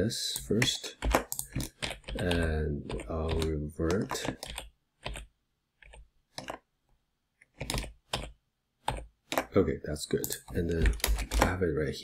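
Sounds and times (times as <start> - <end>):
computer keyboard clicking: 0.4 - 6.6, 7.5 - 8.3, 10.2 - 11.6.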